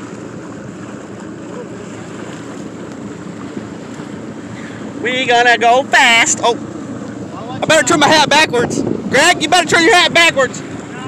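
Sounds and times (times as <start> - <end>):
water rushing along boat hull: 0.0 - 11.0
wind on microphone: 6.9 - 11.0.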